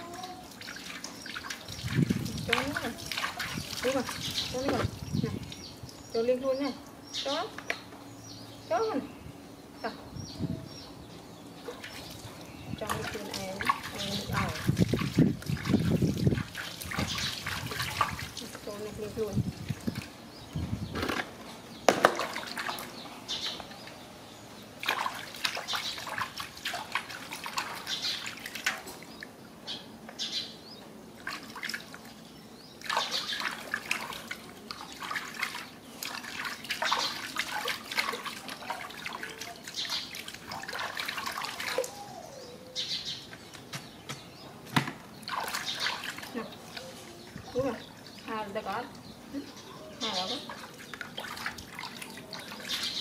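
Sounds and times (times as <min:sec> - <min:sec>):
water splashing in metal basin: 0:00.0 - 0:05.6, 0:11.7 - 0:20.1, 0:21.9 - 0:22.9, 0:24.8 - 0:29.3, 0:31.2 - 0:32.1, 0:32.8 - 0:42.0, 0:44.8 - 0:49.0, 0:50.1 - 0:53.0.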